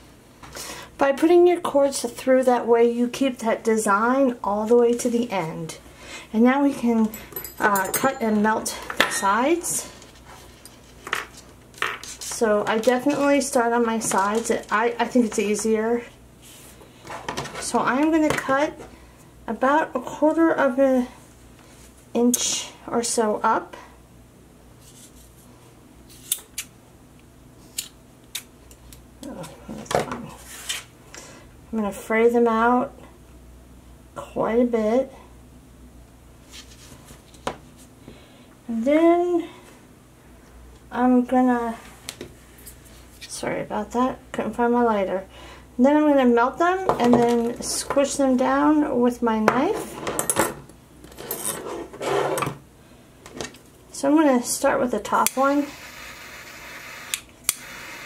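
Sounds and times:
rustling scrape of handling: 36.4 - 37.9, 51.2 - 52.4.

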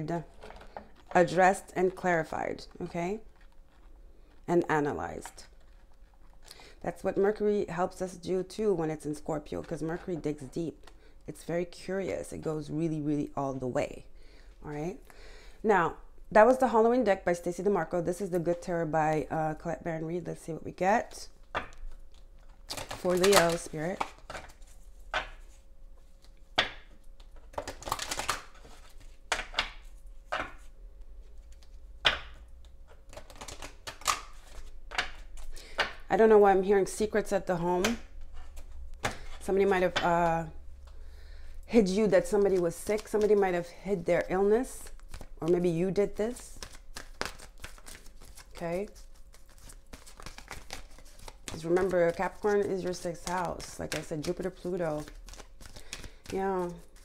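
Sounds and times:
playing cards being shuffled: 21.9 - 35.9, 42.2 - 43.8, 44.6 - 57.0.

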